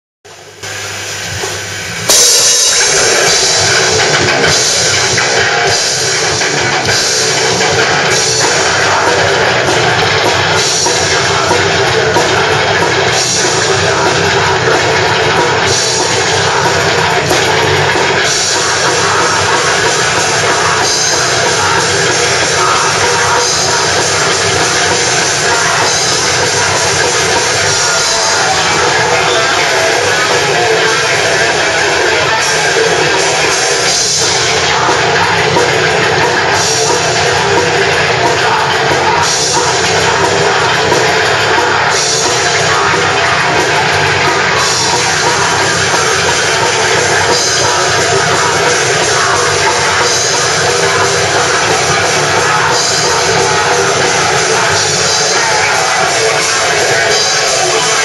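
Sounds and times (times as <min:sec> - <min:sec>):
distorted guitars: 0:00.0 - 0:58.0
death metal band playing live: 0:00.3 - 0:58.0
drum kit with cymbals: 0:00.3 - 0:58.0.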